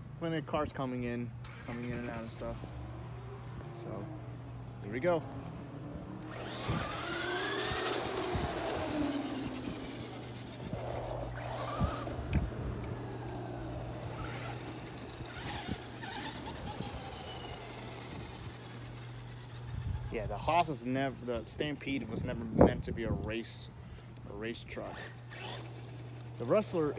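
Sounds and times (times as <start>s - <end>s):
electric motors whining: 1.3s - 26.9s
tyre noise on asphalt: 1.4s - 21.2s.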